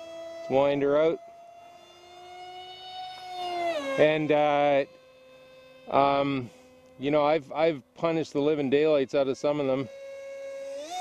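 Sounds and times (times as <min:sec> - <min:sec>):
electric motor propeller whine: 0:00.0 - 0:11.0.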